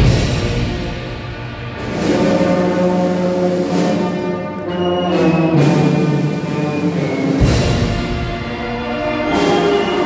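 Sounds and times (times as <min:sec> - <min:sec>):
brass band funeral march: 0:00.0 - 0:10.0.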